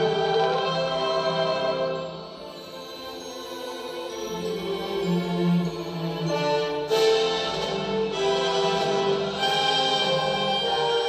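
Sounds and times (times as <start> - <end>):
orchestral strings music: 0.0 - 11.0.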